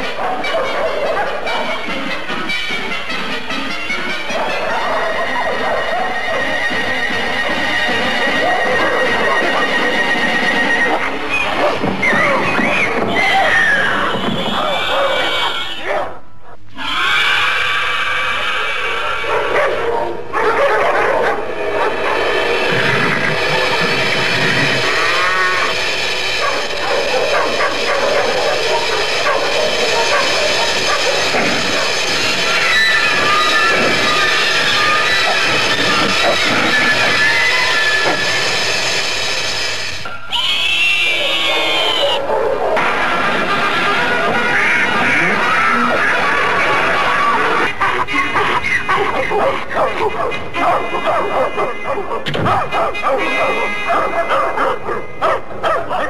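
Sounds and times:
orchestral film score: 0.0 - 15.9
dogs barking and yelping: 0.0 - 56.0.

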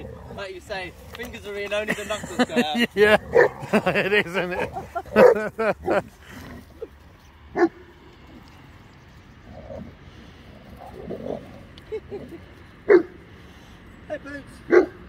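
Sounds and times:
dog barking: 3.3 - 3.6, 5.1 - 5.5, 12.9 - 13.2, 14.7 - 15.0.

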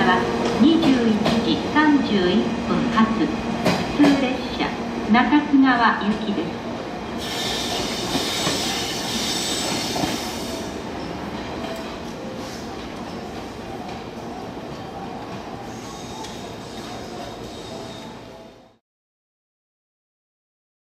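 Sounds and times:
train rumbling and rattling on rails: 0.0 - 18.8
train wheels squealing: 7.2 - 11.3, 15.6 - 18.2.

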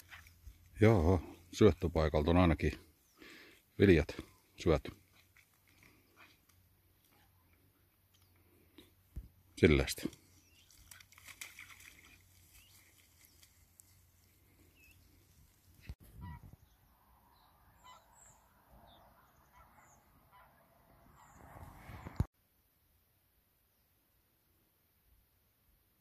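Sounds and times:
distant geese calling: 14.2 - 16.7, 17.4 - 22.2.

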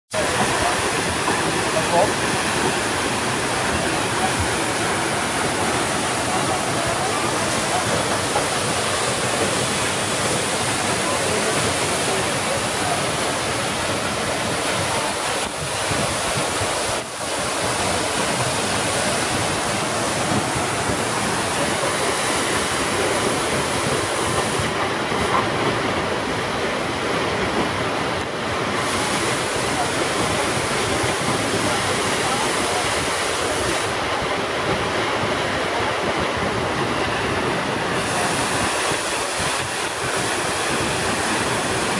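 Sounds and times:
waterfall rushing: 0.1 - 41.9.

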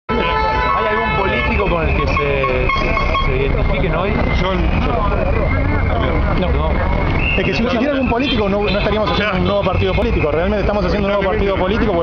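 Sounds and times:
people's voices: 0.1 - 12.0
street traffic noise: 0.1 - 12.0.

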